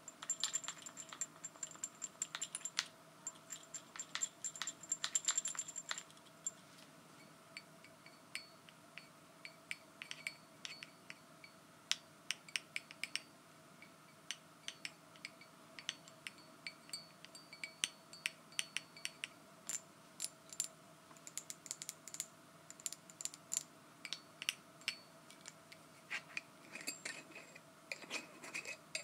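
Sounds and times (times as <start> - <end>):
fingernails tapping on glass jar: 0.1 - 6.0.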